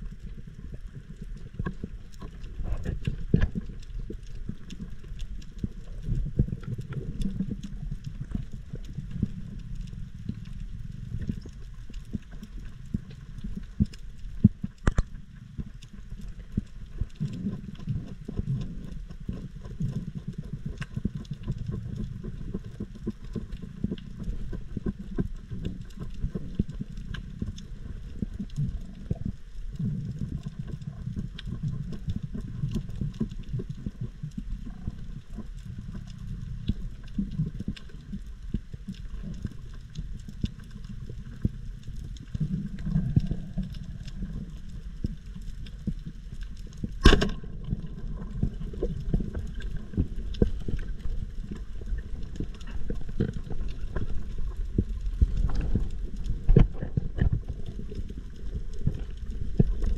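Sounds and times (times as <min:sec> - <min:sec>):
muffled underwater water rush: 0:00.0 - 0:59.9.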